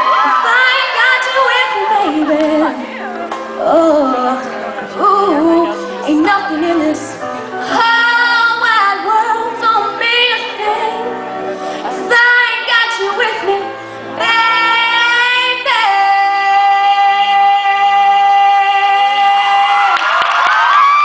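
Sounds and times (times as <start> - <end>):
musical accompaniment: 0.0 - 21.0.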